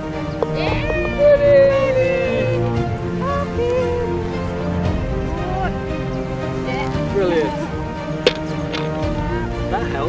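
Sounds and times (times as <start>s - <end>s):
background music: 0.0s - 10.0s
person cheering: 0.5s - 4.2s.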